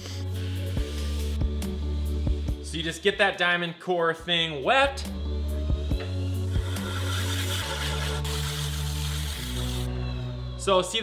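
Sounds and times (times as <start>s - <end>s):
background music with low notes: 0.0s - 11.0s
mug scraping on grinding pad: 6.5s - 9.9s.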